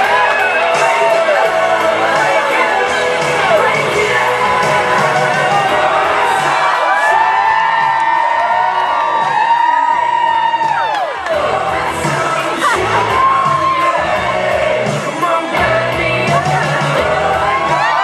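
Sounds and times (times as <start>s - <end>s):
audience cheering and whooping: 0.0s - 15.6s, 17.0s - 18.0s
club music with steady beat: 0.0s - 18.0s.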